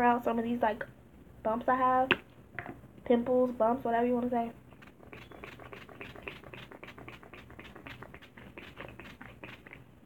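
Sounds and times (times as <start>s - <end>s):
spray bottle hissing: 4.8s - 9.8s.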